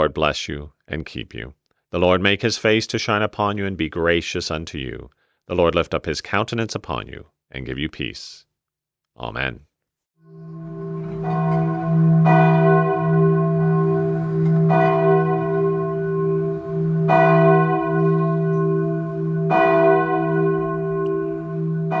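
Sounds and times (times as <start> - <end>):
church bell tolling: 10.3 - 22.0.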